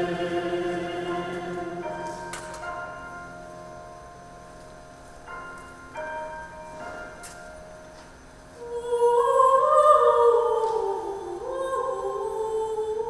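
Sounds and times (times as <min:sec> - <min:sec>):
soft grand piano notes: 0:00.0 - 0:13.0.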